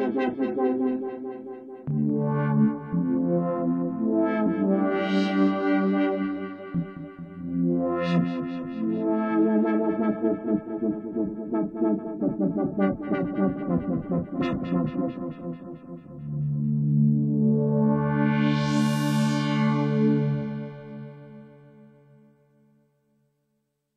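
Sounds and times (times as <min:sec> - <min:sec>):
analog synthesizer with filter sweep: 0:00.0 - 0:21.7.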